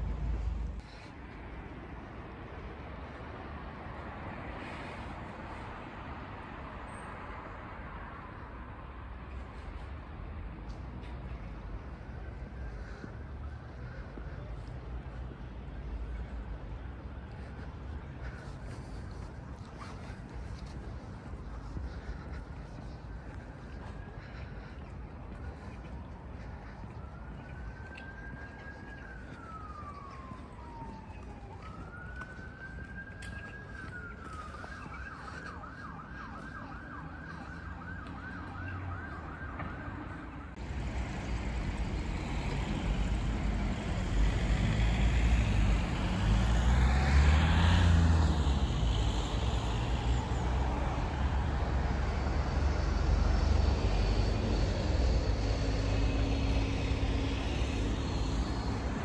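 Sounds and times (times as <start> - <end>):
emergency vehicle siren: 0.0 - 59.0
street traffic: 0.0 - 59.0
car passing close: 40.6 - 59.0.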